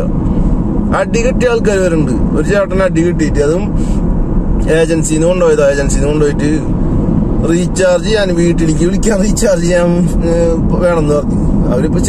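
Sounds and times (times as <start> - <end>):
car road and engine noise: 0.0 - 12.0.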